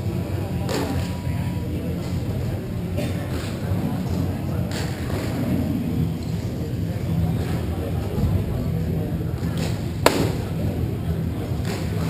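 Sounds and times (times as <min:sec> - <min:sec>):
low hum of rink: 0:00.0 - 0:12.0
sharp crack from hockey play: 0:09.6 - 0:10.5.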